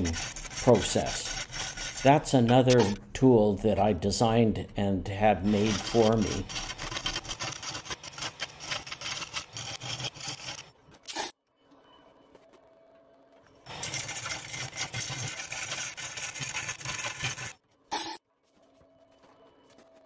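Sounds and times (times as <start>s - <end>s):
lathe cutter scraping wood: 0.0s - 3.0s, 5.4s - 10.7s, 13.7s - 17.5s.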